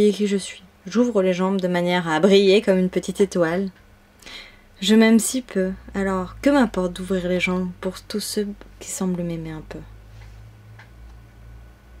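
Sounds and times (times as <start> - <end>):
steady low hum: 0.0 - 12.0
faint irregular clicks: 10.2 - 11.2.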